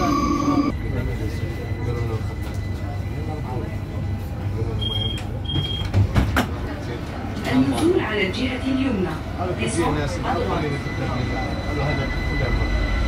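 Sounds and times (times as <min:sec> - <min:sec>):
train car low rumble: 0:00.0 - 0:13.0.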